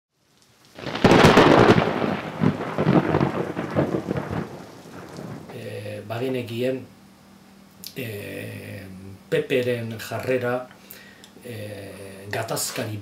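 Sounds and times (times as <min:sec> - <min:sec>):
rain: 0:00.1 - 0:06.5
thunder crack rumbling: 0:00.8 - 0:06.2.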